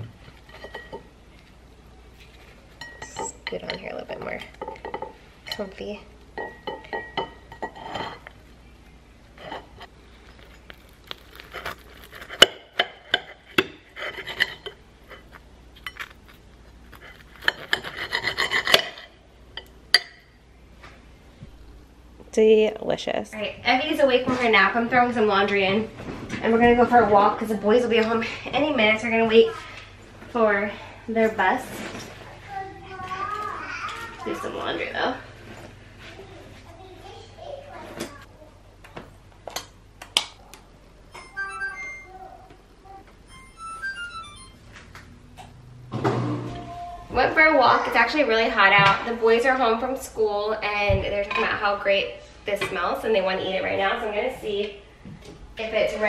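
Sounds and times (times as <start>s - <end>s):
knife sawing through toast: 13.9s - 15.4s, 16.8s - 19.0s
young child talking and calling out: 32.5s - 34.4s, 46.6s - 48.0s.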